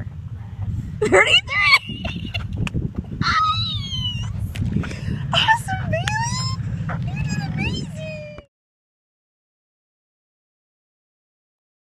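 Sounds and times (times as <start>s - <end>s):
steady low rumble: 0.0s - 8.5s
boy squealing with laughter: 3.2s - 4.3s.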